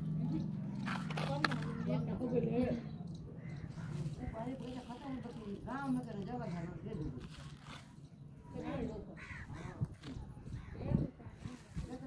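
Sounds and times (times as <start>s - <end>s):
crow cawing: 3.4s - 4.5s, 9.2s - 9.9s.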